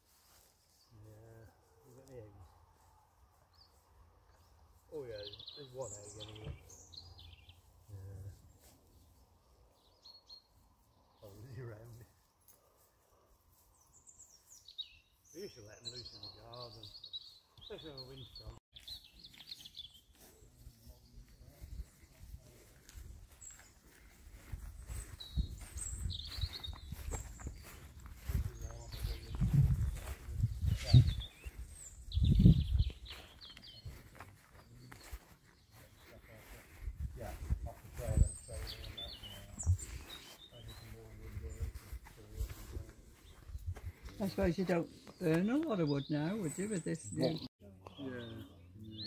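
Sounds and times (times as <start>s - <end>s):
small birds chirping: 0.0s - 49.0s
low rumbling on microphone: 28.2s - 31.2s, 32.1s - 32.9s.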